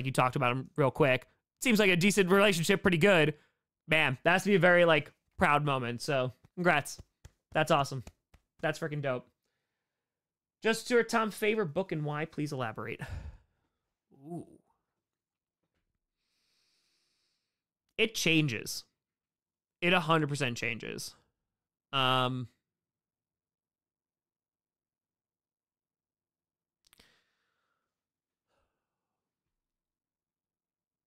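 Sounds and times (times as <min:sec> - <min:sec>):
man sighing: 0:13.0 - 0:13.4
man saying ooh: 0:14.2 - 0:14.7
short breath: 0:26.9 - 0:27.9.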